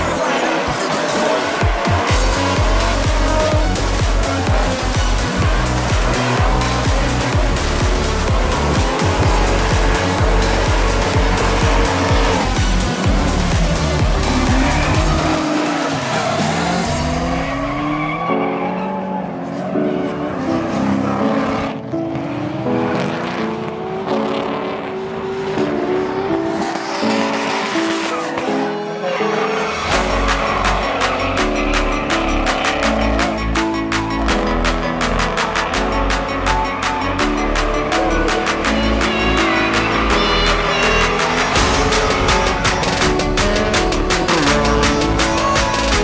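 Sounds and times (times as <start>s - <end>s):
electronic dance music: 0.0s - 18.4s, 23.9s - 46.0s
car engines revving: 0.0s - 46.0s.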